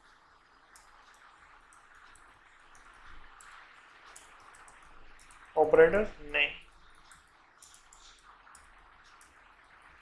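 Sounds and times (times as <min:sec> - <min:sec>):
low room hiss: 0:00.0 - 0:10.0.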